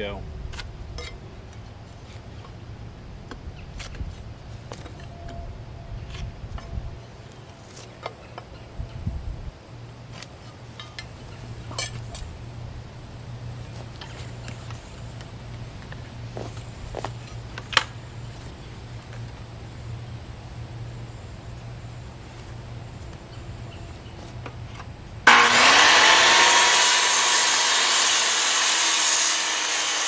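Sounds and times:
steady low hum: 0:08.5 - 0:25.5.

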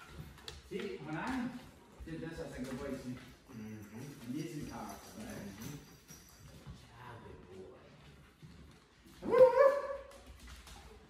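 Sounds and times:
dog barking: 0:09.2 - 0:10.1.

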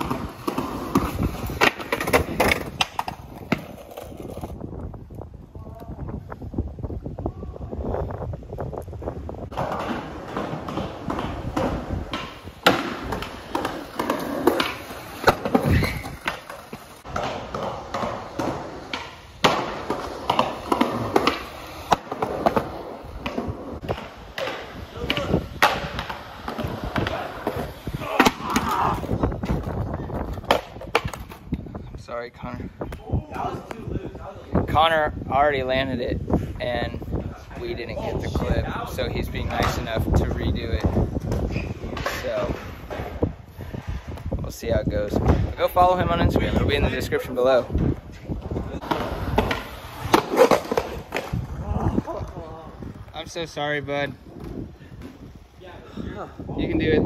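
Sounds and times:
skateboard clacks: 0:00.0 - 0:04.6, 0:09.5 - 0:31.6, 0:47.6 - 0:53.2
skateboard wheels rolling on concrete: 0:00.0 - 0:57.0
heavy thud of skater falling: 0:09.5 - 0:31.1.

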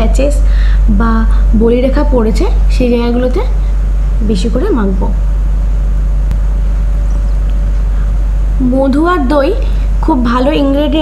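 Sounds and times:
loud low hum: 0:00.0 - 0:11.0.

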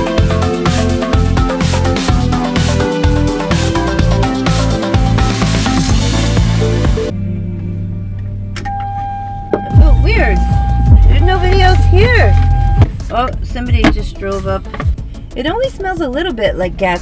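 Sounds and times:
steady high tone: 0:08.6 - 0:12.8
low rumble: 0:09.7 - 0:15.3.

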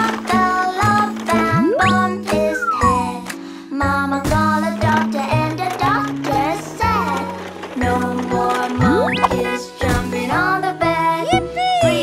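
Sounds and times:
children's music with bass line: 0:01.0 - 0:03.4, 0:07.4 - 0:12.0
swooping pitched glides: 0:01.5 - 0:03.1, 0:08.8 - 0:09.6.

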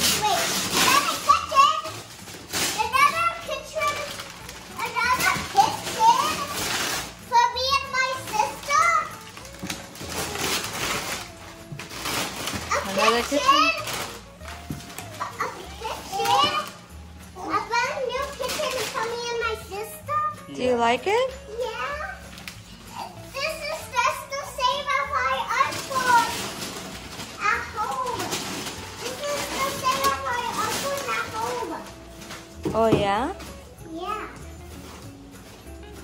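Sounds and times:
wrapping paper ripping and rustling: 0:00.0 - 0:20.1, 0:21.3 - 0:33.7.

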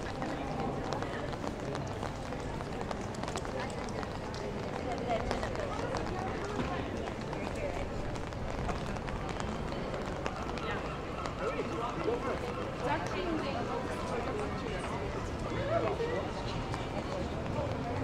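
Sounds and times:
chatter of passers-by: 0:00.0 - 0:18.0
footsteps on wet paving: 0:00.0 - 0:18.0.

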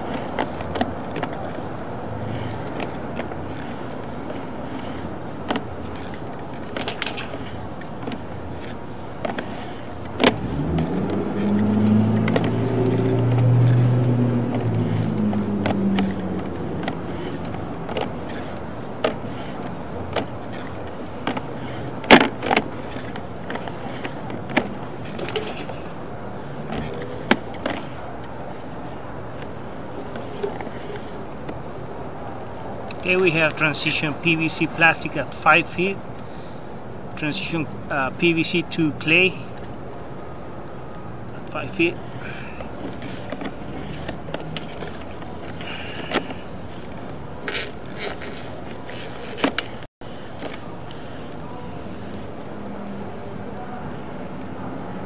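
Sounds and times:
cable clicks and scrapes: 0:00.0 - 0:31.6, 0:41.4 - 0:51.4
outdoor background noise: 0:00.0 - 0:55.0.

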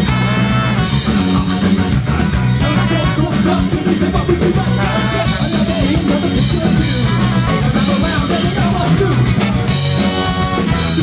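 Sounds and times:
ska band playing: 0:00.0 - 0:11.0
trumpet: 0:00.0 - 0:11.0.

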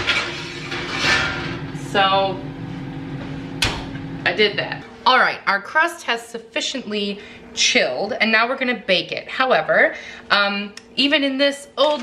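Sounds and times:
baking sheet scraping oven rack: 0:00.0 - 0:04.0
low appliance hum: 0:00.0 - 0:12.0.

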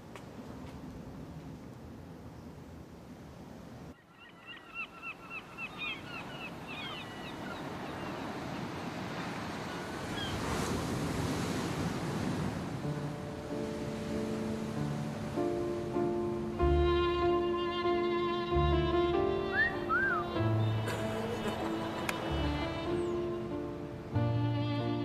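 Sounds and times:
repeated bird calls: 0:04.0 - 0:08.6
surf: 0:06.5 - 0:25.0
bowed string music: 0:14.2 - 0:25.0.

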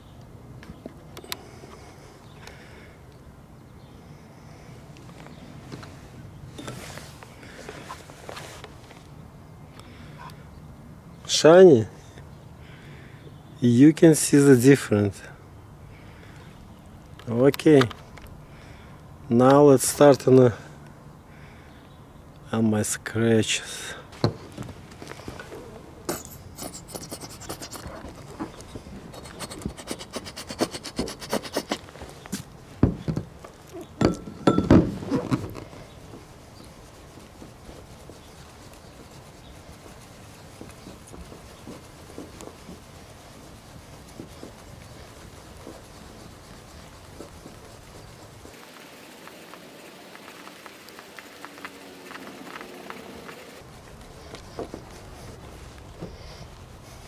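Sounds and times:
cloth rubbing on plastic window: 0:05.5 - 0:09.0, 0:24.4 - 0:34.0, 0:34.8 - 0:57.0.

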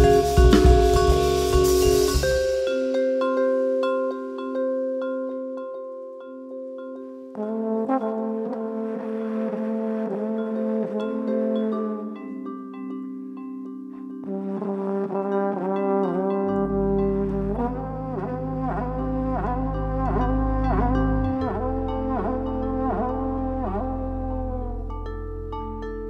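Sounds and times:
low double bass notes: 0:00.0 - 0:02.6, 0:16.5 - 0:26.0
trombone swooping notes: 0:00.0 - 0:04.4, 0:07.4 - 0:12.2, 0:14.2 - 0:24.9
sustained vibraphone tones: 0:00.0 - 0:08.0, 0:09.3 - 0:26.0.

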